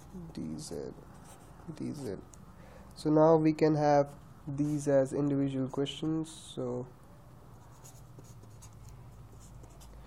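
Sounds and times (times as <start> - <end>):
pen scratching on paper: 7.6 - 10.0.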